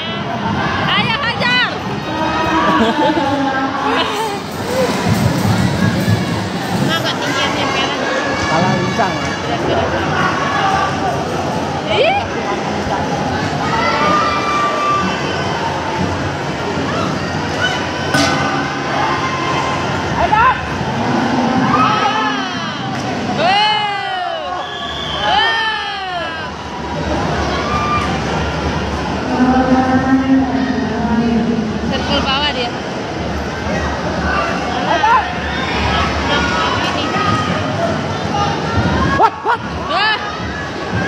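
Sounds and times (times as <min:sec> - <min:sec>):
crowd chatter: 0:00.0 - 0:41.0
spectators shouting and cheering: 0:00.0 - 0:41.0.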